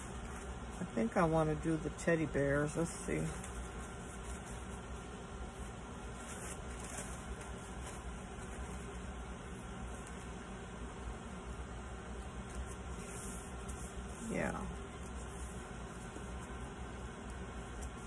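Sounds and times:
background hum and hiss: 0.0s - 18.0s
paper napkin rustling: 0.0s - 18.0s.

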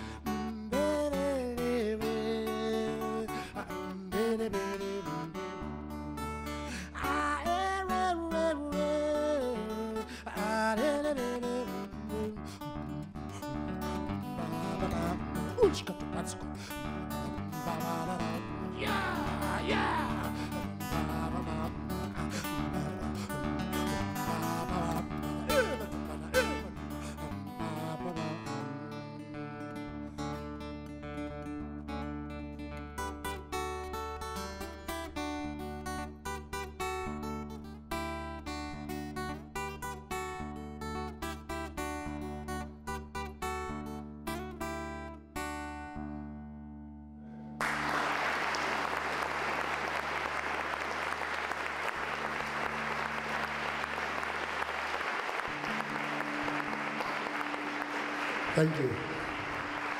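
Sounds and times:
fingerpicked acoustic guitar: 0.0s - 59.9s
audience applause: 18.8s - 20.5s, 47.6s - 59.9s.

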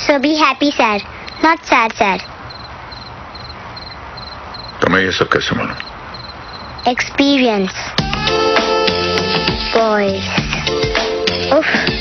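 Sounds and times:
cricket chirping: 1.2s - 7.2s.

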